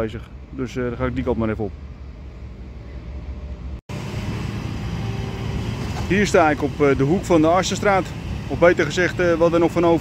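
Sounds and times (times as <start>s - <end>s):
outdoor noise: 0.0s - 10.0s
distant excavator diesel engine: 1.8s - 10.0s.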